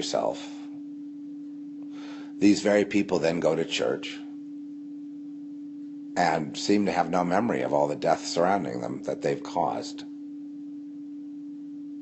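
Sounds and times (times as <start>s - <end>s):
steady middle-pitched tone: 0.0s - 12.0s.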